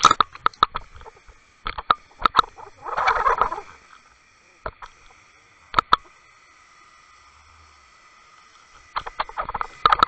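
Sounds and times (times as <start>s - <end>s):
underwater rattling clatter: 0.0s - 3.7s
light underwater clicks: 0.0s - 6.1s, 8.4s - 10.0s.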